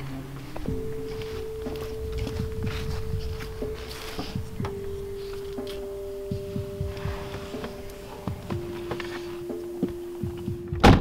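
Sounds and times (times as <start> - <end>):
droning music tone: 0.0 - 11.0
car door thunk: 6.4 - 11.0.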